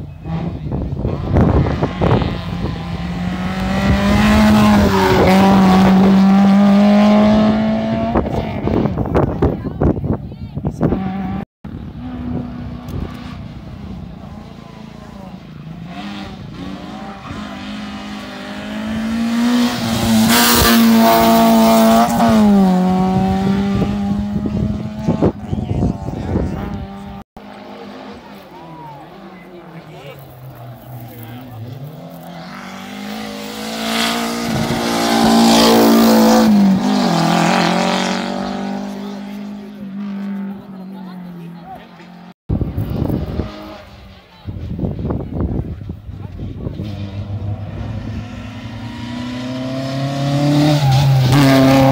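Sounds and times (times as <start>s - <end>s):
rally cars passing at high revs: 0.1s - 10.0s, 10.8s - 51.9s.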